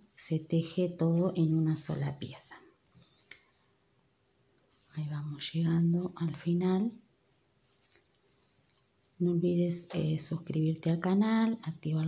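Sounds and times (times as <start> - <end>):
faint high-pitched hiss: 0.0 - 12.0.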